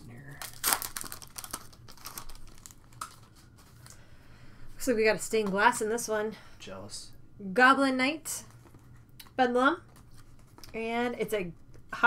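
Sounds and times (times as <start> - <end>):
foil wrapper crinkling: 0.1 - 4.0.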